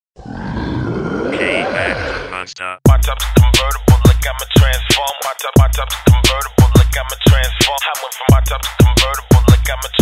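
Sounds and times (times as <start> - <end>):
low rough pitch-sliding voice: 1.3 - 2.6.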